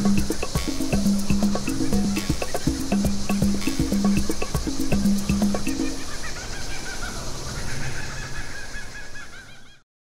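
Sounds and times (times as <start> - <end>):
music with held notes: 0.0 - 6.1
faint steady hum: 0.0 - 9.7
bird chirps: 0.0 - 9.8.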